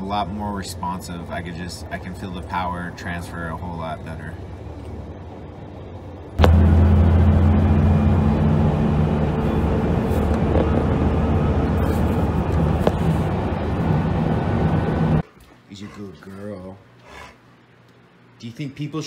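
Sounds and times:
road and wind noise: 0:00.0 - 0:15.3
pickup truck engine running: 0:06.4 - 0:15.2.

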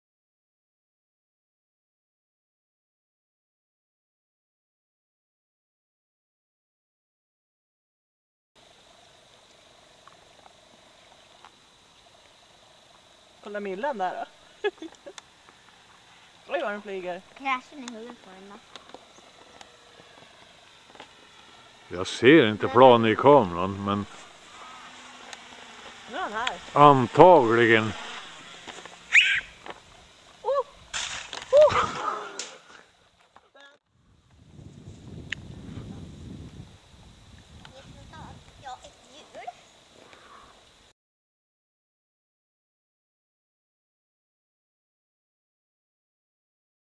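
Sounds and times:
distant model plane motors buzzing: 0:08.6 - 0:33.3
rush of noise: 0:18.2 - 0:30.9
wordless vocal cries: 0:29.1 - 0:29.6, 0:30.4 - 0:30.8, 0:31.5 - 0:32.8
faint ticks: 0:40.0 - 0:40.8.

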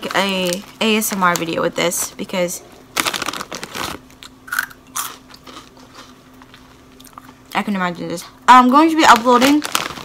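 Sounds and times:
faint steady hum: 0:00.0 - 0:10.0
crunchy snack being chewed: 0:03.0 - 0:07.4.

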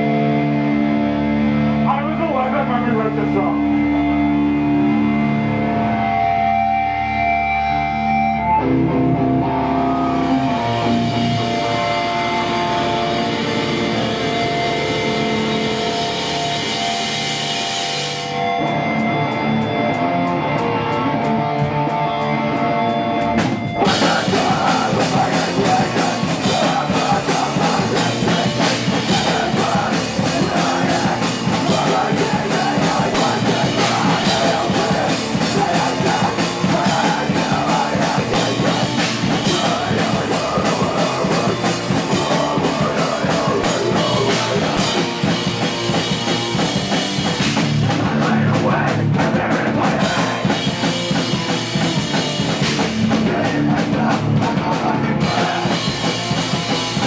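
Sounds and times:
heavy rock band playing: 0:00.0 - 0:57.0.

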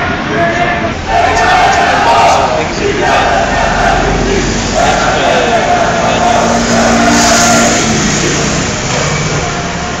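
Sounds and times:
people's voices: 0:00.0 - 0:10.0
car driving slowly past: 0:01.2 - 0:10.0.

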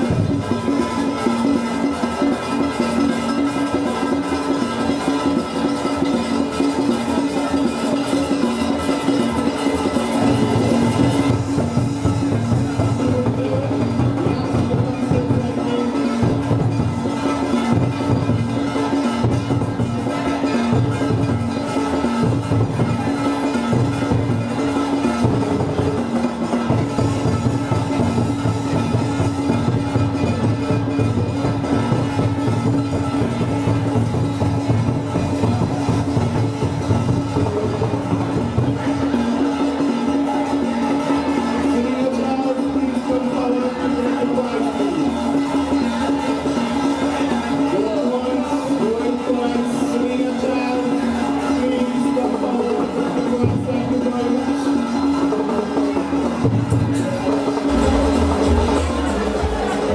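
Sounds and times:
music with bass line: 0:56.4 - 0:59.9.

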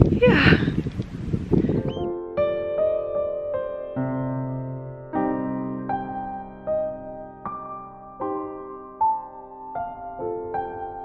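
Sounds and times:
wind rumbling on microphone: 0:00.0 - 0:02.1
soft piano music: 0:01.6 - 0:11.0.

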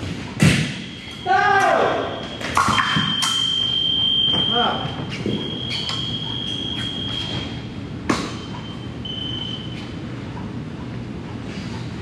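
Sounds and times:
scoring machine high steady tone: 0:00.9 - 0:02.4, 0:03.1 - 0:07.7, 0:08.4 - 0:09.8.

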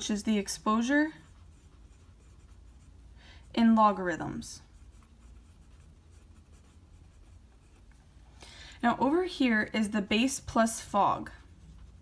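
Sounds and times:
pen scratching on paper: 0:00.3 - 0:08.0.

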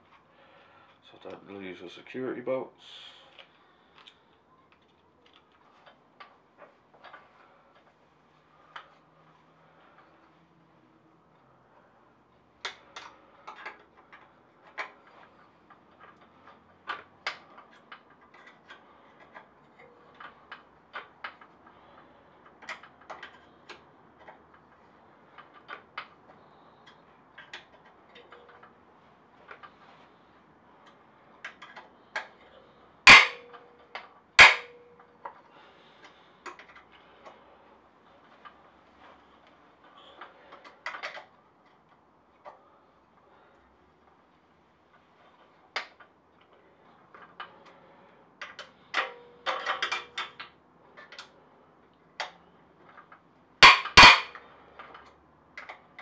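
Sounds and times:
tools clicking and tapping on metal: 0:30.8 - 0:35.4, 0:47.2 - 0:51.3, 0:52.2 - 0:56.0
loud sharp metal knocks: 0:33.1 - 0:33.5, 0:34.4 - 0:34.8, 0:53.6 - 0:54.4.

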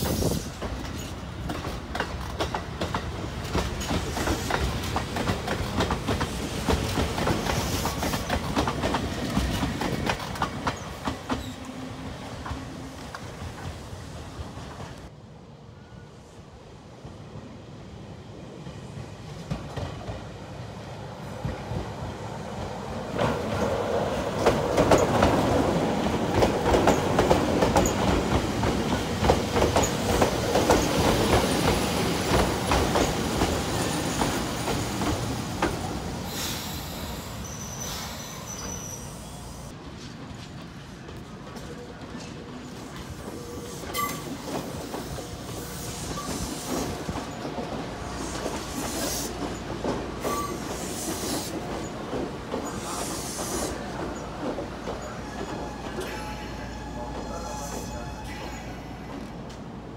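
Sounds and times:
train wheels clicking over rail joints: 0:00.0 - 0:11.7, 0:23.1 - 0:37.0, 0:39.8 - 0:56.2
train clunks: 0:00.0 - 0:13.8, 0:23.1 - 0:38.9, 0:39.7 - 0:59.7
train brakes squealing: 0:36.3 - 0:39.7, 0:42.6 - 0:47.4, 0:48.1 - 0:52.0, 0:52.6 - 0:59.3.

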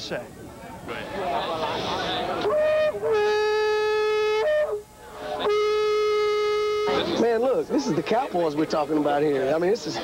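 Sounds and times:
plastic fan horn blasts: 0:02.4 - 0:07.2.

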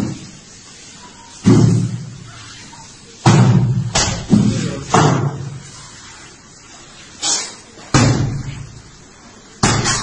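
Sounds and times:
watermelons thudding and splitting: 0:07.9 - 0:08.7, 0:09.6 - 0:10.0.

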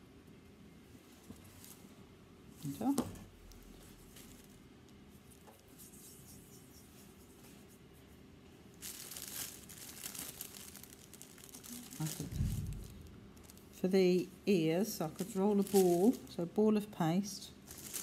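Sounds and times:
plastic bag crinkling: 0:08.7 - 0:13.8, 0:15.0 - 0:16.4, 0:17.6 - 0:18.0
dull low thump: 0:12.2 - 0:13.3.

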